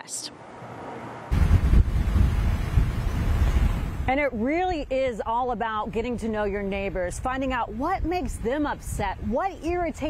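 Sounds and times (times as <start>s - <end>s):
wind buffeting a microphone: 1.3s - 10.0s.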